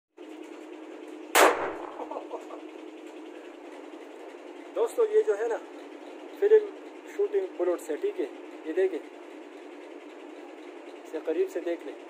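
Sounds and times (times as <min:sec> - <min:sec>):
blank gunshot: 0:01.4 - 0:02.0.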